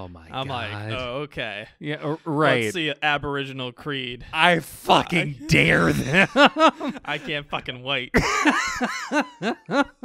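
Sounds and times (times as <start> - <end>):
men laughing: 5.4 - 7.6, 8.2 - 10.0.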